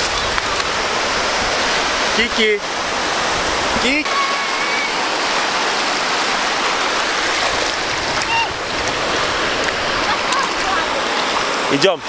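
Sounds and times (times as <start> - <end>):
small waves breaking on shore: 0.0 - 12.0.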